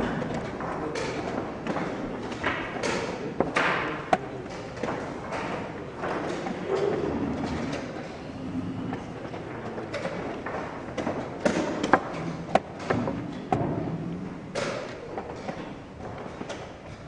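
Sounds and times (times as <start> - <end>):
room murmur: 0.0 - 17.0.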